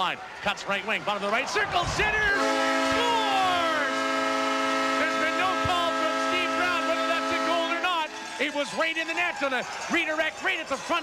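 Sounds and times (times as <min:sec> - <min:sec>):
person shouting: 0:01.9 - 0:03.9
arena goal horn blast: 0:02.0 - 0:08.1.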